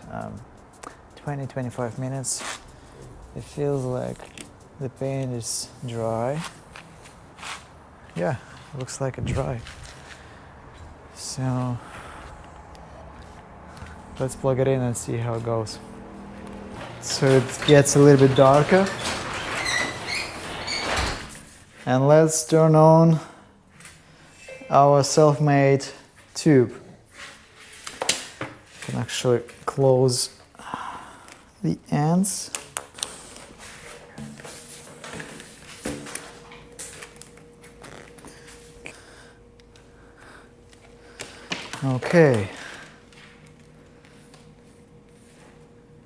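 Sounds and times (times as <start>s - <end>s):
high squeaks: 17.3s - 21.3s, 24.3s - 25.2s
faint steady hum: 29.8s - 46.0s.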